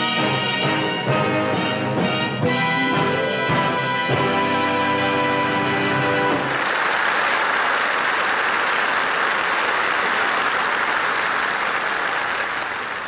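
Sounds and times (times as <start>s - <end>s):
band chord: 0.0s - 6.5s
audience applause: 5.0s - 13.0s.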